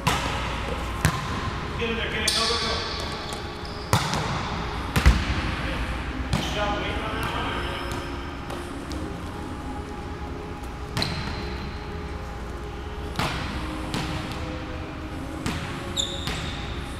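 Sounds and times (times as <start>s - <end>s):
ball slapping gym floor: 0.0s - 1.5s, 2.3s - 5.4s.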